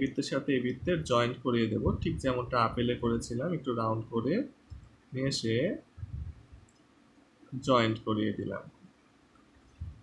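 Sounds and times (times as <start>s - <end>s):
man speaking: 0.0s - 5.9s, 7.5s - 8.8s.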